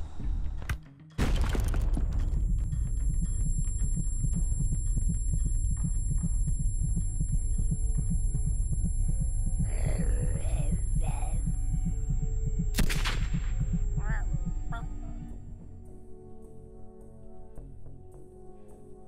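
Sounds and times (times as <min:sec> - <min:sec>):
deep pulsing throb: 0:01.2 - 0:15.6
voice: 0:09.7 - 0:11.4, 0:14.0 - 0:15.0
loud gunshot: 0:12.8 - 0:13.6.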